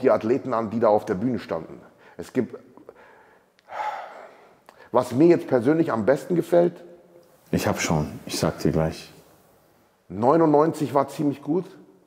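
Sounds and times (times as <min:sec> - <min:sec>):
man sighing: 0:03.7 - 0:04.6.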